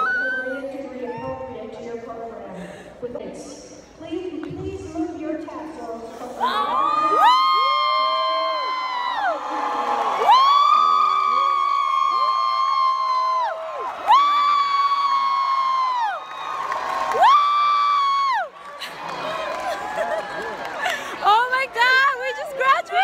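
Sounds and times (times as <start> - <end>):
people whooping and screaming: 0.0 - 1.4, 6.4 - 23.0
crowd cheering: 6.4 - 23.0.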